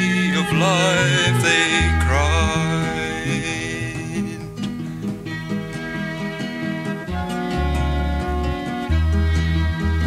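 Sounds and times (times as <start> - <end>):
person singing: 0.0 - 4.8
moving bass line: 0.0 - 10.0
sustained instrumental chords: 0.0 - 10.0.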